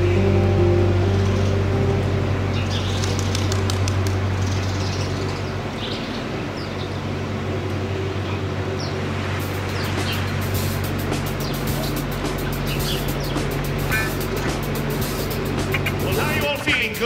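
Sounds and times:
music with sliding pitches: 0.0 - 3.7, 9.4 - 17.0
boat engine humming: 0.0 - 17.0.

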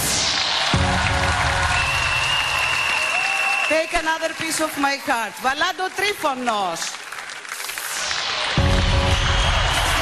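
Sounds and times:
music: 0.0 - 2.6, 8.2 - 10.0
audience applauding: 0.0 - 10.0.

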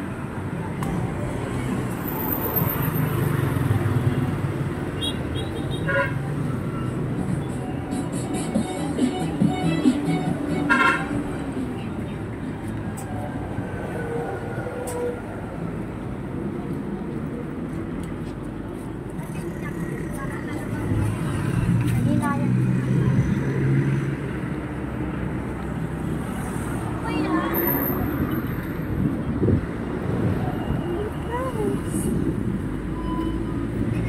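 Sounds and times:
passing vehicles: 0.0 - 34.0.

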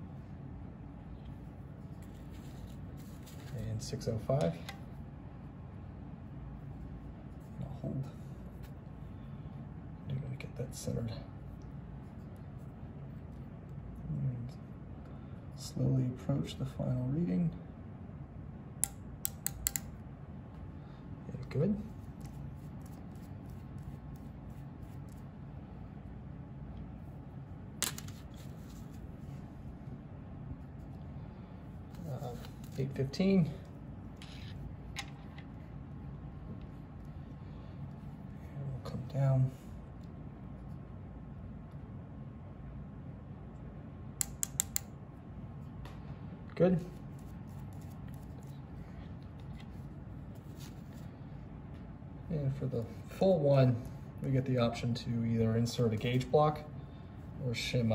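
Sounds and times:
low room hum: 0.0 - 57.9.

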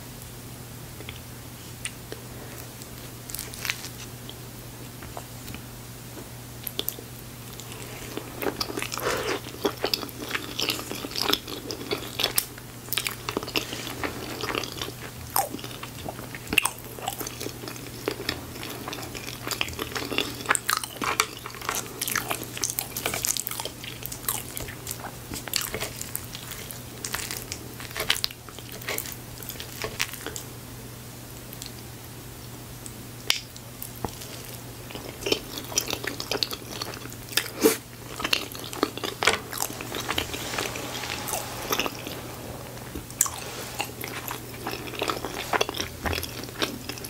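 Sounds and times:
chewing with mouth noises: 6.6 - 30.4, 34.1 - 47.0
steady low hum: 37.1 - 47.0.

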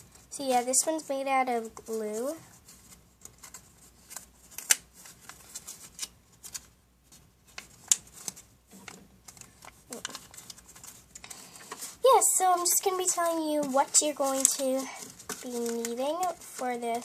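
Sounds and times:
paper envelope rustling: 0.0 - 17.0.

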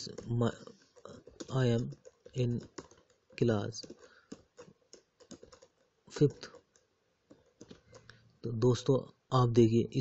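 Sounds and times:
faint keyboard keystrokes: 0.0 - 8.3.

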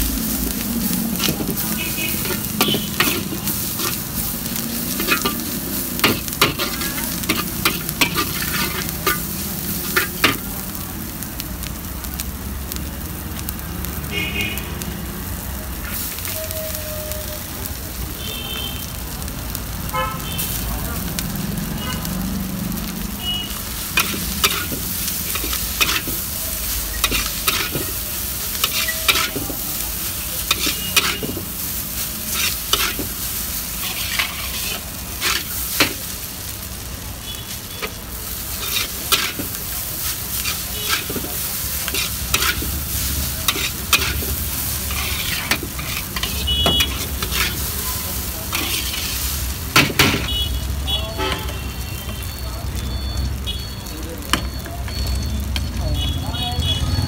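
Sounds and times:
food sizzling in a wok: 0.0 - 57.0
metal spatula scraping a wok: 1.2 - 4.2, 4.8 - 10.4, 23.9 - 36.0, 37.8 - 50.4.

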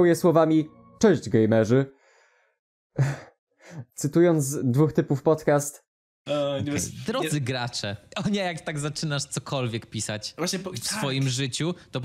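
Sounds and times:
man sighing: 3.0 - 3.8.

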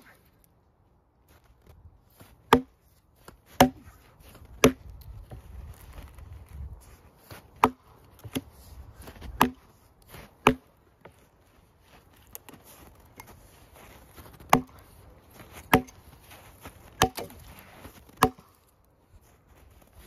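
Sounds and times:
axe chopping log: 2.5 - 2.8, 3.5 - 5.4, 7.6 - 8.6, 9.2 - 10.8, 14.3 - 14.8, 15.6 - 16.0, 17.0 - 17.4, 18.1 - 18.6.

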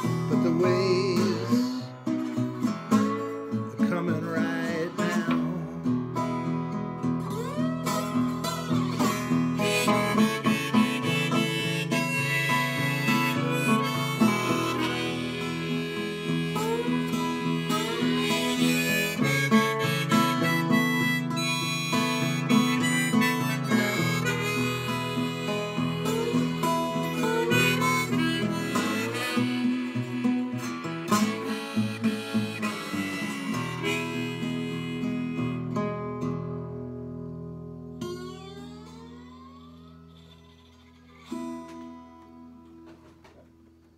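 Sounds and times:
harmonica with bending notes: 0.0 - 43.4
strummed acoustic guitar: 0.0 - 43.9.

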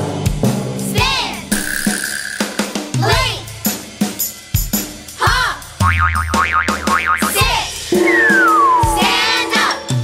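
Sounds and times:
children's song backing music: 0.2 - 1.6, 2.9 - 5.8, 7.3 - 10.0
springy boing: 5.8 - 8.7
wobbling boing tone: 5.8 - 9.1.

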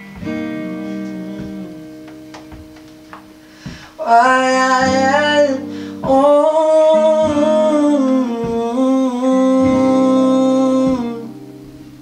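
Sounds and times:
acoustic guitar: 0.0 - 12.0
man singing: 3.9 - 11.6.

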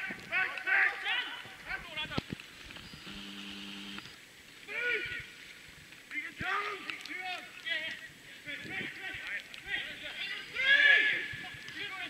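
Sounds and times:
distant shouting: 9.8 - 12.0.

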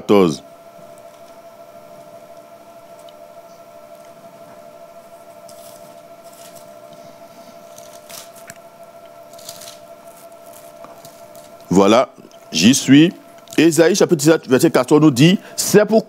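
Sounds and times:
paper pages rustling: 5.4 - 8.7, 9.3 - 11.7.

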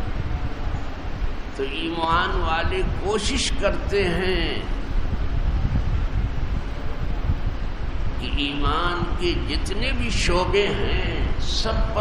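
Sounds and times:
low rumbling: 0.0 - 12.0.

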